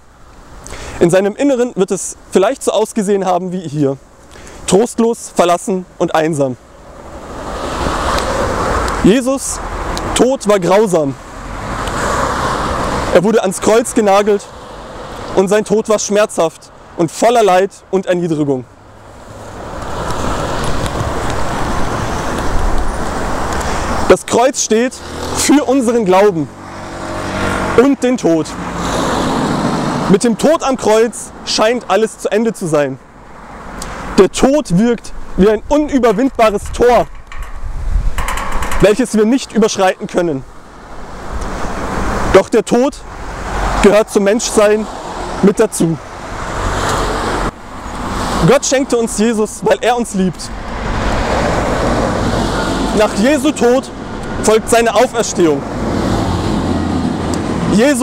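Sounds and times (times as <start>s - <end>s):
distant traffic rush: 0.0s - 58.0s
vehicle passing with tyre hiss: 6.8s - 9.0s, 11.3s - 13.1s, 18.9s - 24.1s, 24.8s - 25.8s, 26.5s - 27.8s, 28.4s - 30.1s, 33.2s - 34.2s, 46.0s - 48.5s, 50.6s - 53.2s, 55.4s - 57.7s.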